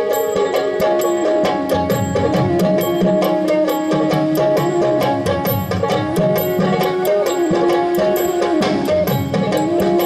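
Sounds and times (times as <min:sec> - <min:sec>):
plucked string melody: 0:00.0 - 0:10.0.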